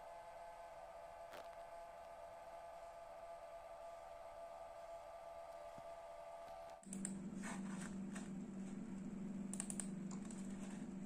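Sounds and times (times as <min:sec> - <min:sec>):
steady low hum: 0:00.0 - 0:11.0
computer mouse clicks: 0:06.5 - 0:07.2, 0:09.5 - 0:10.5.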